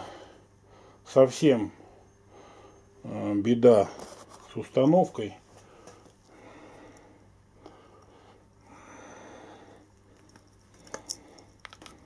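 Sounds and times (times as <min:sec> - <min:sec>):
man breathing faintly: 0:00.0 - 0:03.0, 0:05.5 - 0:12.0
soft handling noise: 0:03.7 - 0:06.3.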